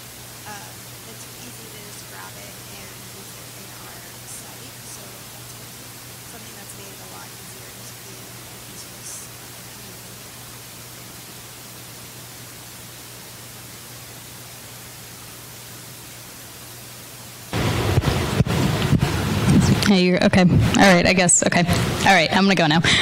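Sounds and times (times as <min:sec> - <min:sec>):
low steady hum: 0:00.0 - 0:23.0
steady hiss: 0:00.0 - 0:23.0.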